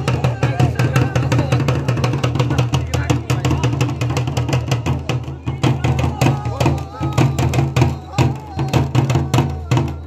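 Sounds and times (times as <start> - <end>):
hand drum beating: 0.0 - 10.0.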